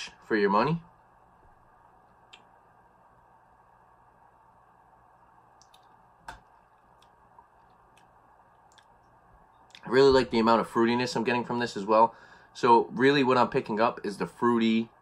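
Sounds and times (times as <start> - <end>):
faint clicks: 2.1 - 2.5, 5.6 - 9.9.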